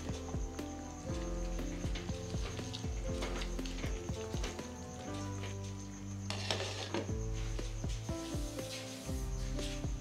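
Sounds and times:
music with thudding beat: 0.0s - 5.8s, 7.0s - 10.0s.

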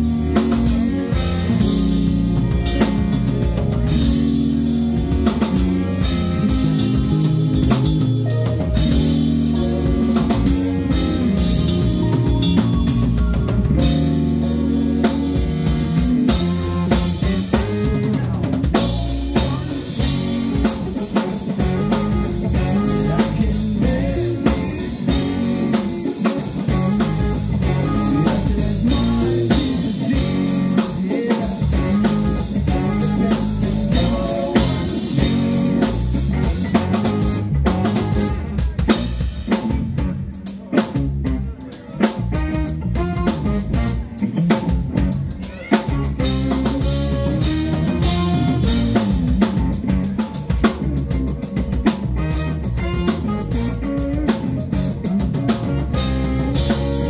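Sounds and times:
funk band playing: 0.0s - 57.0s.

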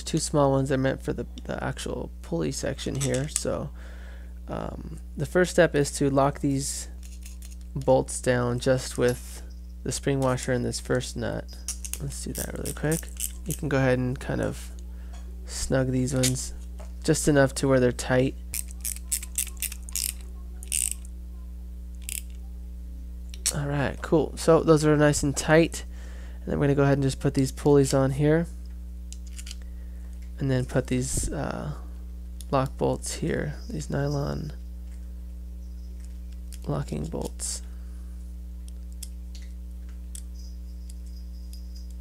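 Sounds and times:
steady low hum: 0.0s - 42.0s
ratcheting wrench clicking: 11.7s - 13.6s, 18.6s - 21.1s, 22.0s - 22.4s.

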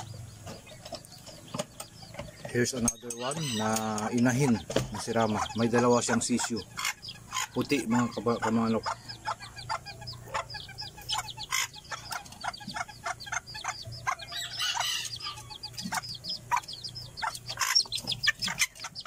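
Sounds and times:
chicks peeping: 0.0s - 19.0s
hen clucking: 0.0s - 19.0s.

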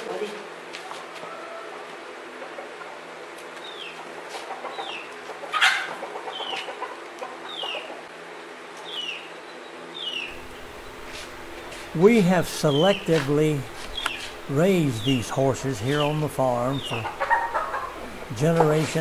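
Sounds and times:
chicken peeping: 3.6s - 8.0s, 10.0s - 19.0s.

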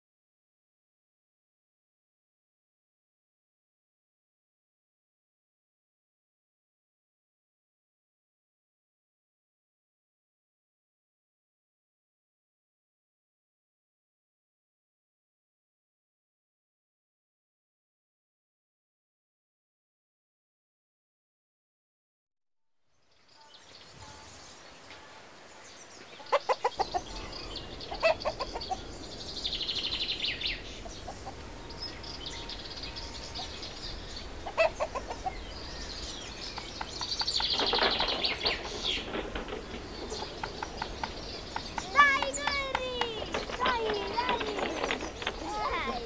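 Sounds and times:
birds calling: 23.2s - 46.0s
hens clucking: 26.1s - 29.0s, 30.7s - 31.6s, 34.2s - 46.0s
voices calling out: 36.7s - 46.0s.

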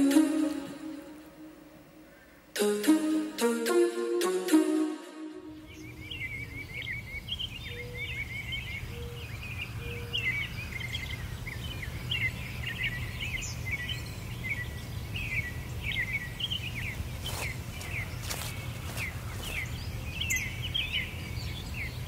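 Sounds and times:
songbirds chirping and trilling: 5.5s - 22.0s.

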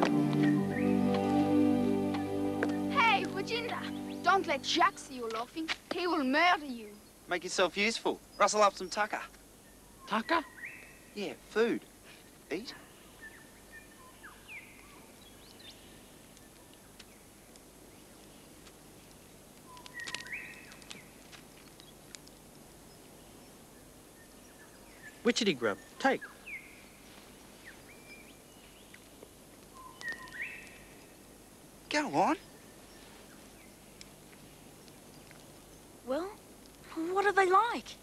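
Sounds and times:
birds chirping and whistling: 0.0s - 5.3s, 19.6s - 21.1s, 29.7s - 31.1s
faint outdoor background: 0.0s - 38.0s
steady low hiss: 0.0s - 38.0s
faint bird chirps: 8.3s - 11.4s, 12.1s - 18.6s, 19.6s - 22.0s, 22.8s - 31.2s.

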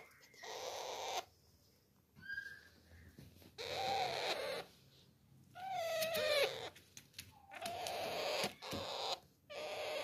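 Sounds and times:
parrots calling: 0.0s - 1.4s, 2.2s - 4.8s, 5.6s - 6.8s, 7.4s - 10.0s.

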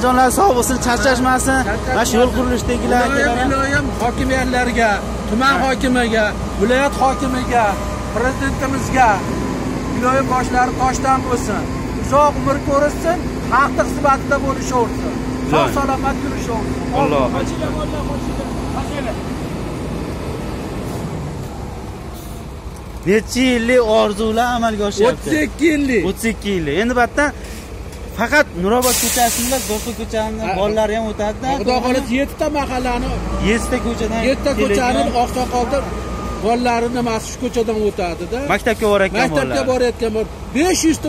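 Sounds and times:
man talking: 0.0s - 9.2s, 9.9s - 19.3s, 23.0s - 27.4s, 28.1s - 41.0s
asphalt paver engine drone: 0.0s - 41.0s.

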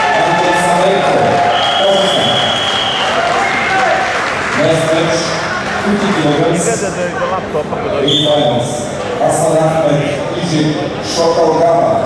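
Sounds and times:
crowd voices in a hall: 0.0s - 12.0s
referee's whistle blast: 1.5s - 3.2s.

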